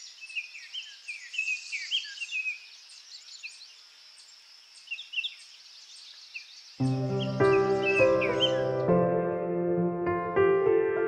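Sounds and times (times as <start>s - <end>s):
small birds chirping: 0.0s - 9.1s
high-pitched nature hiss: 0.0s - 9.8s
music: 6.8s - 11.0s.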